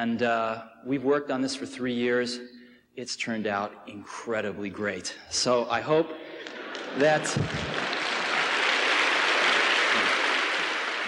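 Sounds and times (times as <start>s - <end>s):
large audience applauding: 6.4s - 11.0s.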